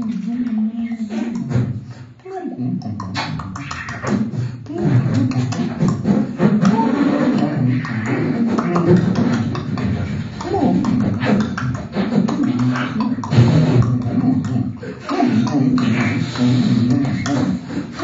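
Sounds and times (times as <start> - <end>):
mouth clicks and pops: 0.0 - 18.0
vocal hums and growls: 0.0 - 18.0.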